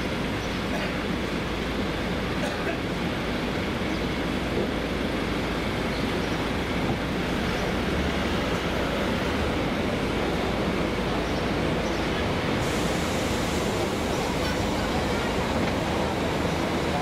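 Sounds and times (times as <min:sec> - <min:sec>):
city traffic rumble: 0:00.0 - 0:17.0.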